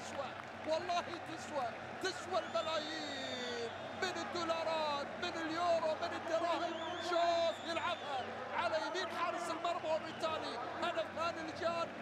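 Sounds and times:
man commentating: 0:00.0 - 0:12.0
stadium crowd noise: 0:00.0 - 0:12.0.

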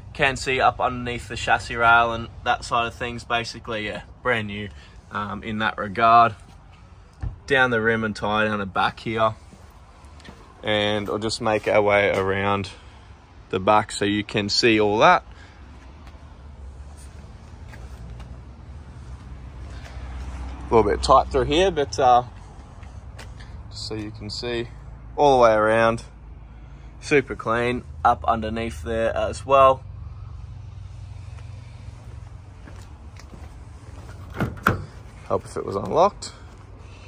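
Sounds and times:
low outdoor rumble: 0:00.0 - 0:37.0.

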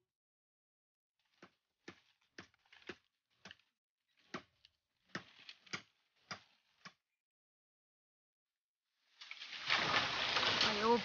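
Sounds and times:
blade chopping bamboo: 0:01.2 - 0:07.0.

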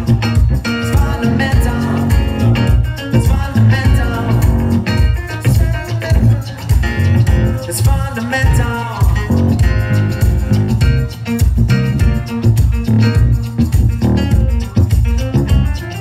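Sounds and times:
electric guitar: 0:00.0 - 0:16.0
keyboard: 0:00.0 - 0:16.0
pulsing bass beat: 0:00.0 - 0:16.0.

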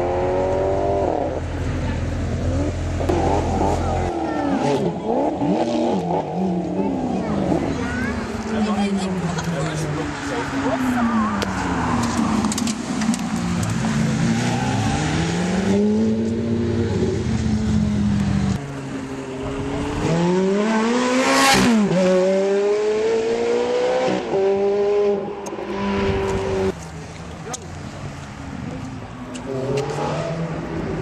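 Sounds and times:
sports car engine at full throttle: 0:00.0 - 0:31.0.

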